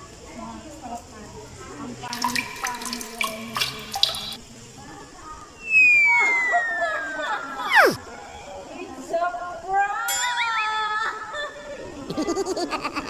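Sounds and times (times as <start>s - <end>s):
descending whistle tone: 5.6s - 8.0s.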